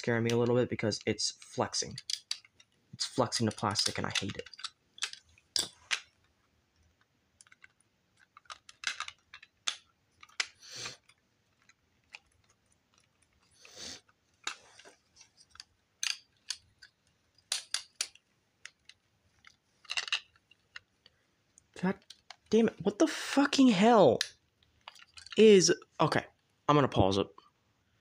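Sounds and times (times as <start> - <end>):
plastic building bricks clicking: 1.4 - 22.6, 24.1 - 25.5.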